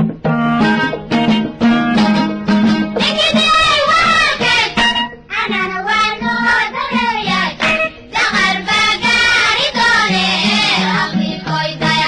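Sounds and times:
instrumental backing: 0.0s - 12.0s
voices singing: 3.0s - 12.0s.

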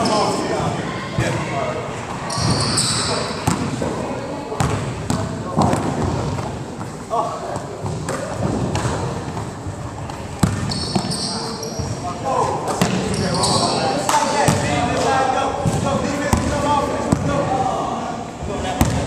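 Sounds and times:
basketball bouncing on wooden floor: 10.4s - 11.1s
high squeaks: 10.7s - 12.0s, 13.1s - 13.9s.

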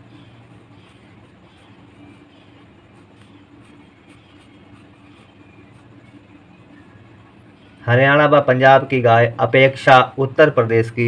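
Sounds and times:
pen scratching on paper: 0.0s - 6.2s
steady low hum: 0.0s - 11.0s.

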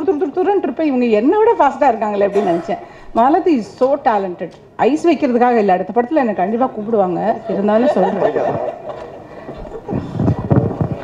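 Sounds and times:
handheld microphone handling thumps: 9.5s - 11.0s.

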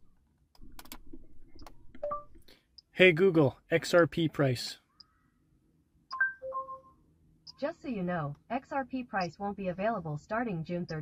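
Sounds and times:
two-tone electronic chime: 6.1s - 7.0s.

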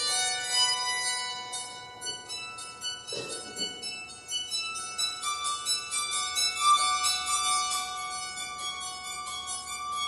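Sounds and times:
bowed psaltery melody: 0.0s - 10.0s.

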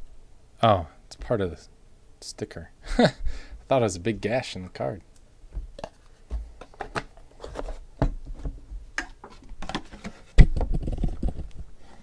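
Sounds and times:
cards and packaging rustling: 5.8s - 8.4s.

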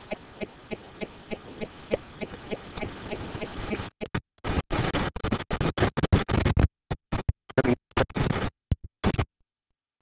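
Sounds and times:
scratching and rubbing: 0.0s - 7.3s.

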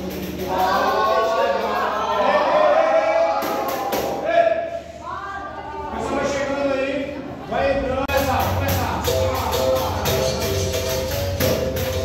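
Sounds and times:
group of voices singing: 0.4s - 4.1s, 9.0s - 12.0s.

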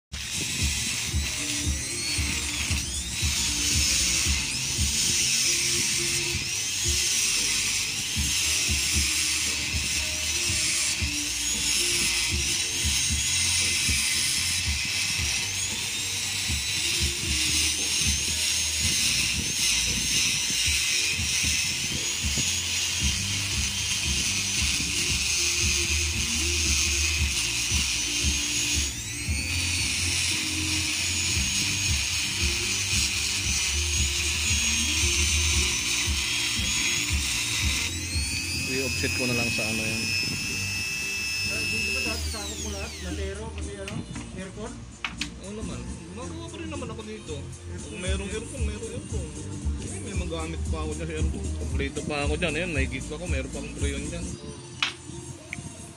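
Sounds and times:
rotary tool grinding steel: 0.1s - 44.5s
background music: 0.2s - 55.9s.

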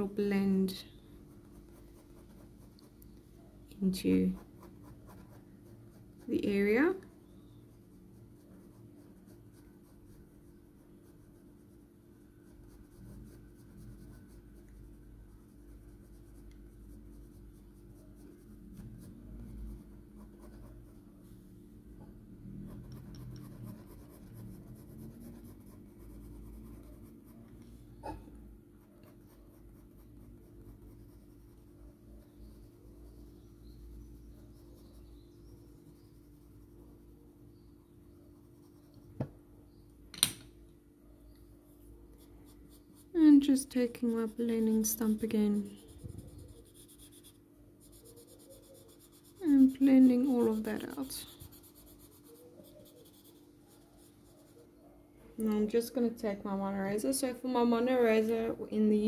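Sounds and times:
low steady hum: 0.0s - 59.0s
pencil scratching on paper: 1.3s - 3.0s, 4.2s - 6.8s, 7.7s - 11.8s, 12.4s - 21.0s, 22.6s - 27.4s, 28.8s - 37.3s, 42.2s - 54.7s.

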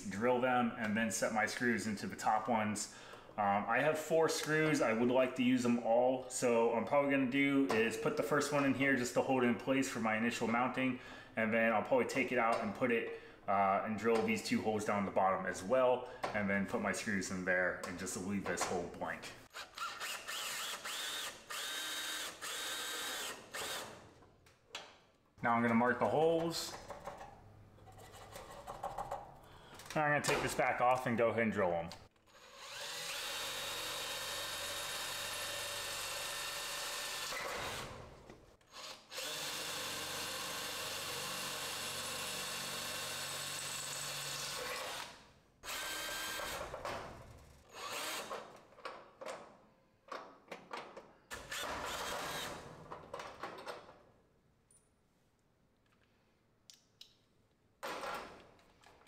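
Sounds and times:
cordless drill motor whining: 19.5s - 23.9s, 32.3s - 37.9s, 38.7s - 46.6s, 47.7s - 48.3s, 51.3s - 52.6s.

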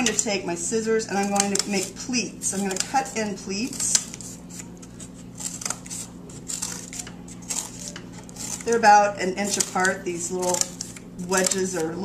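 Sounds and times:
scissors cutting cardboard: 2.5s - 11.8s.

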